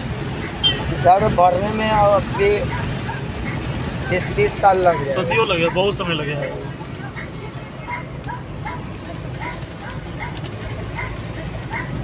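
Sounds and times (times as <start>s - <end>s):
car cabin road and engine noise: 0.0s - 12.0s.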